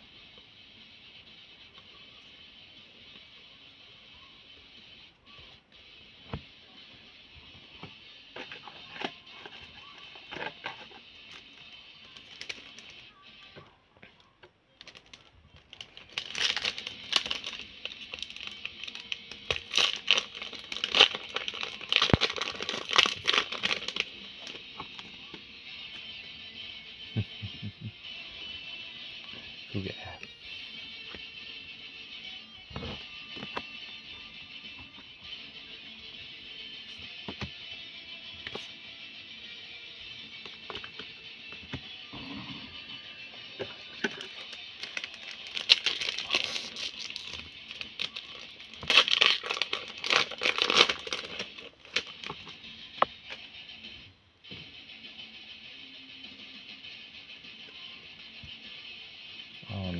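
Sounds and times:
background music: 6.2s - 59.9s
foil wrapper crinkling: 12.1s - 13.0s, 14.8s - 25.1s, 43.8s - 52.5s.

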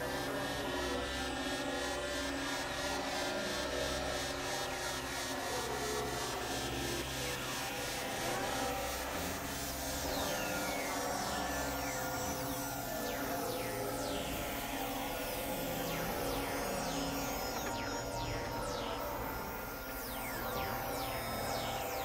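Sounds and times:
synthesizer drones: 0.0s - 22.0s.

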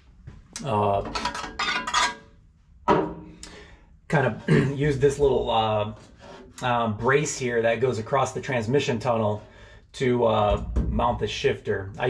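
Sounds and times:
metal clattering and rattling: 1.1s - 2.3s.

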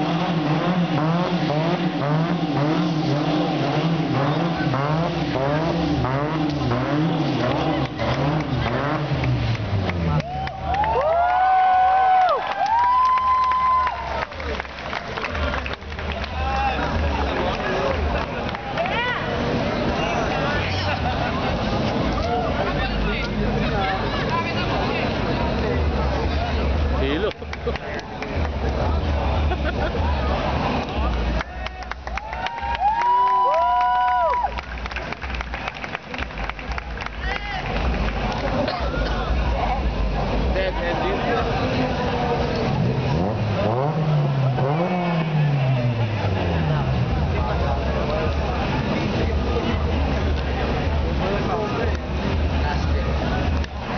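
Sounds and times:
car engine running: 0.0s - 10.9s, 13.9s - 32.8s
crowd chatter: 0.0s - 53.9s
people talking and calling out: 0.0s - 53.9s.

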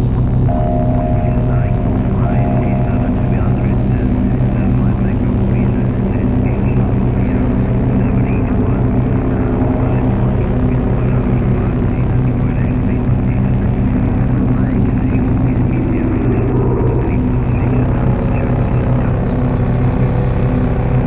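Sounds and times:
synthesizer drone music: 0.0s - 21.0s
chirping synth glides: 0.5s - 5.8s, 7.2s - 12.8s, 14.9s - 18.2s.

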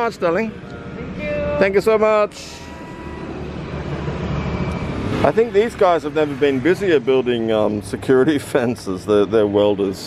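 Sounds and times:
motorbike engine passing: 1.9s - 9.8s.

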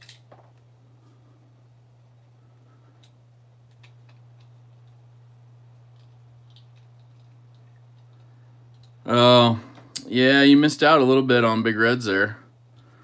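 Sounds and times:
steady low hum: 0.0s - 13.0s.

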